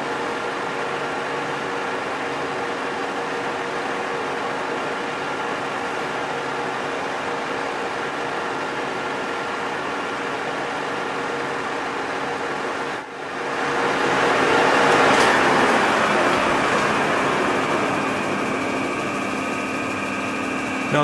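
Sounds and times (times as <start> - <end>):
lathe cutting metal: 13.5 - 21.0.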